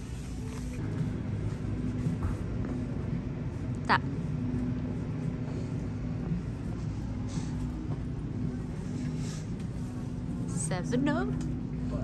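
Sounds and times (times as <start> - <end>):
ventilation and coolers humming: 0.0 - 12.0.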